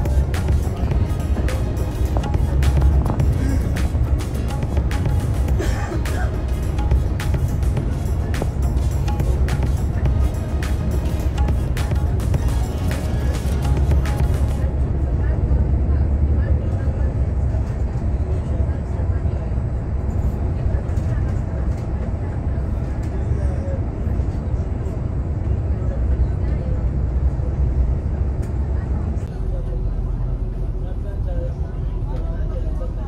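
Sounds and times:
music playing: 0.0s - 15.4s
bus engine and road rumble: 0.0s - 33.0s.

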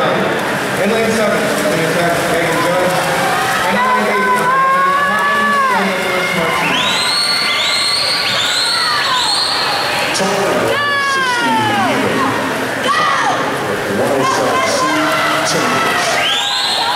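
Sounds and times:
crowd noise: 0.0s - 16.9s
spectators yelling: 0.0s - 16.9s
shrill calls: 6.5s - 10.1s.

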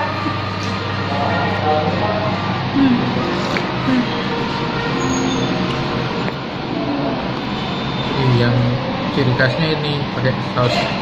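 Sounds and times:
steady hiss and hum: 0.0s - 11.0s.

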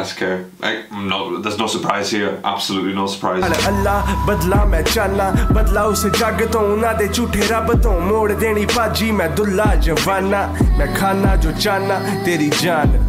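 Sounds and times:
heavy bass and kick drum: 3.4s - 11.7s
rapping over a hip hop beat: 3.4s - 13.0s.

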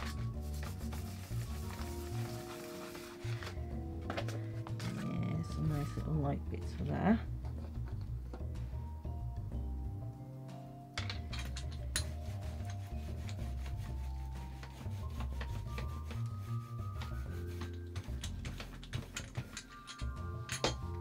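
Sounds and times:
rubber roller rolling over paper: 0.0s - 3.6s, 12.0s - 19.5s.

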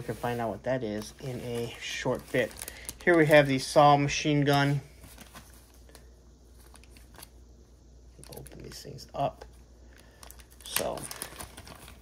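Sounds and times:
plastic bag crinkling: 0.0s - 7.4s, 8.2s - 9.0s, 9.9s - 12.0s.

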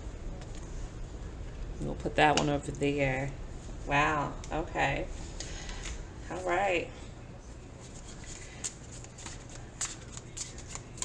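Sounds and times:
cards being shuffled: 7.8s - 11.0s.

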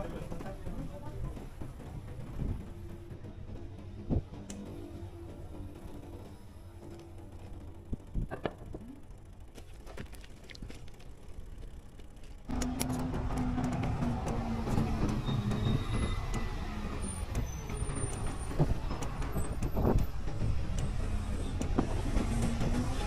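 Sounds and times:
bus diesel engines idling: 0.0s - 9.8s, 10.8s - 23.0s.

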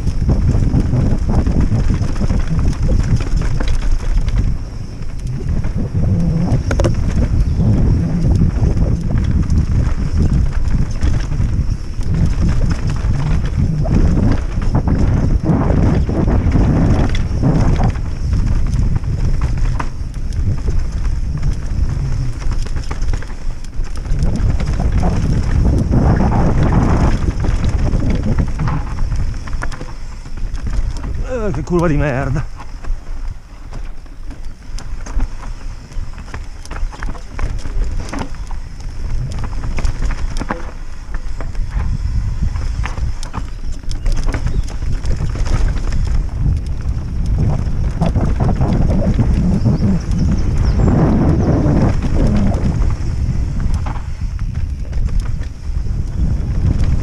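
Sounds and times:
bike rattling over bumps: 0.0s - 57.0s
tyres on dirt: 0.0s - 57.0s
wind buffeting microphone: 0.0s - 57.0s.

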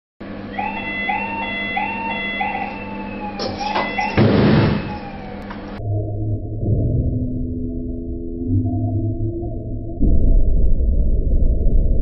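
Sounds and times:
electronic alarm whooping: 0.4s - 5.5s.

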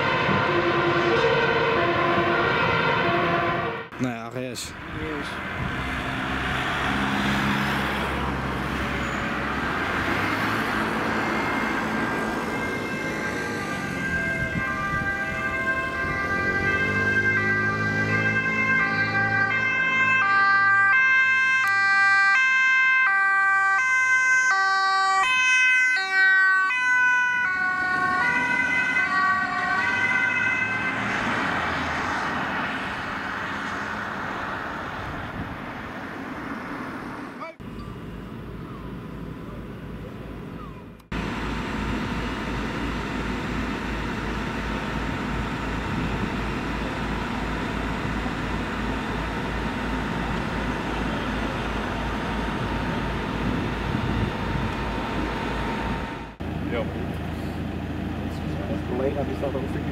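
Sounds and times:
two-tone siren: 0.0s - 4.0s, 5.9s - 34.1s, 40.6s - 56.4s
road and engine noise: 0.0s - 59.9s
diesel engine running: 3.6s - 21.9s, 27.0s - 59.9s.

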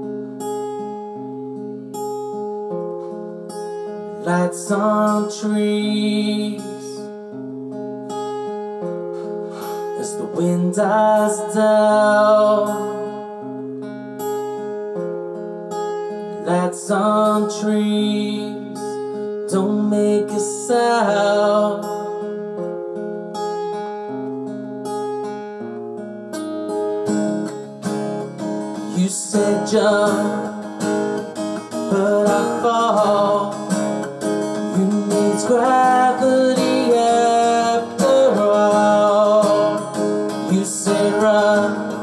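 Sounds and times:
acoustic guitar strumming chords: 0.0s - 42.0s.

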